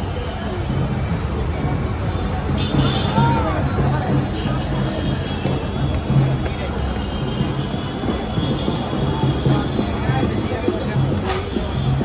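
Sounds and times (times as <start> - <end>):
busy street market din: 0.0 - 12.0
traffic: 0.0 - 12.0.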